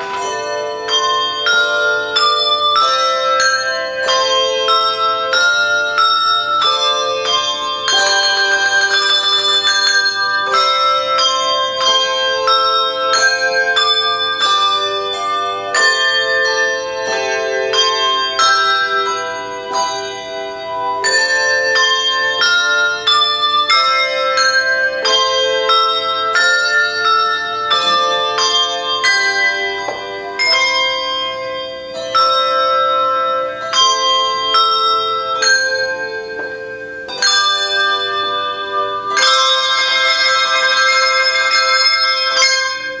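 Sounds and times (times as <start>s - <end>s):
melody on tuned bells: 0.0s - 43.0s.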